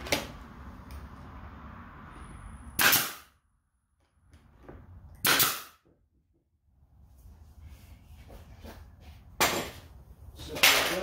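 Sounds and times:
nail gun firing: 2.8s - 3.3s, 5.2s - 5.8s.

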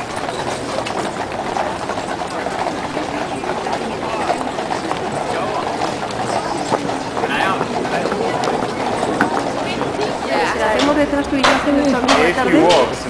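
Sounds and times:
crowd chatter: 0.0s - 13.0s
horse hooves on paved road: 0.0s - 13.0s.

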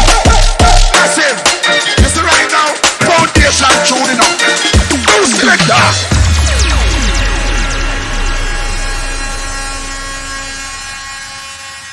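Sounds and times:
deep bass: 4.8s - 11.6s
falling electronic sweeps: 6.1s - 11.9s.

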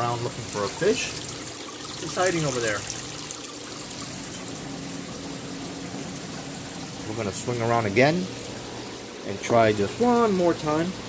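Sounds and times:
water rushing and trickling: 0.0s - 11.0s.

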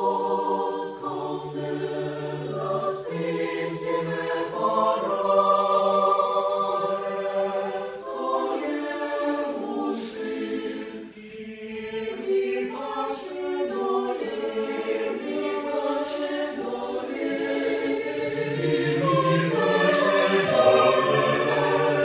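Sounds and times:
mixed choir singing unaccompanied: 0.0s - 22.0s.

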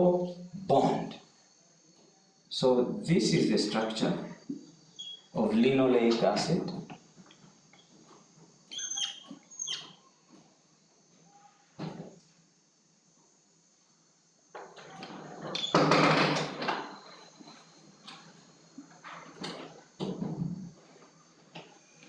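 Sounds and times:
marker squeaking on whiteboard: 5.0s - 5.3s, 8.7s - 10.1s.

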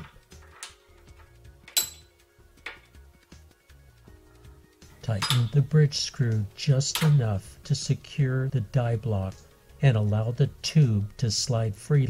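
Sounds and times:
metal tool parts clicking: 0.0s - 2.1s
faint background music: 0.0s - 12.0s
sharp ringing metal clink: 1.7s - 2.2s, 5.2s - 5.6s.

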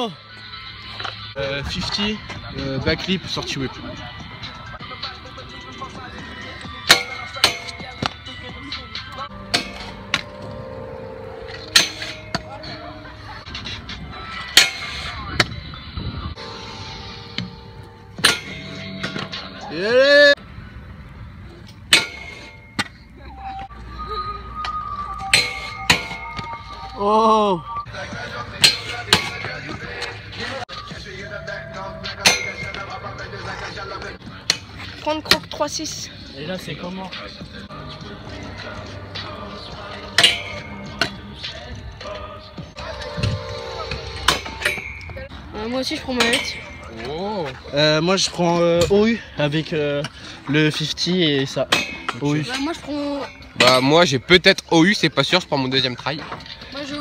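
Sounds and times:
background music: 0.0s - 57.0s
scooters clacking on metal rail: 21.7s - 23.0s, 40.1s - 41.2s, 43.2s - 47.8s.

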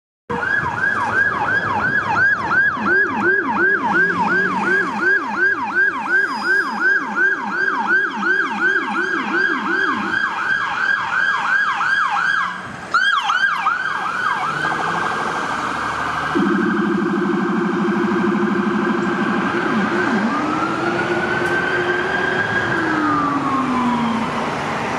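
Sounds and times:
electronic siren yelp: 0.3s - 24.4s
lower-pitched siren sweep: 0.3s - 24.9s
short sharp siren blast: 1.6s - 11.0s, 12.2s - 24.3s.

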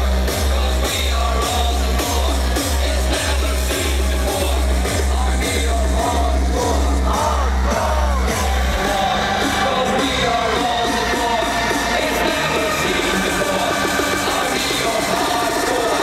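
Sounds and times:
crowd shouting and singing: 0.0s - 16.0s
distorted kick drum pounding: 0.0s - 16.0s
hardcore dance music: 0.0s - 16.0s.

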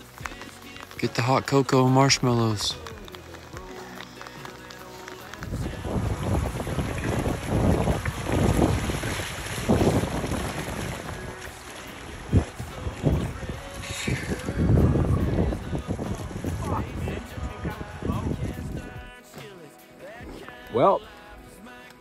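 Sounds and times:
wind gusting over microphone: 5.4s - 19.1s.

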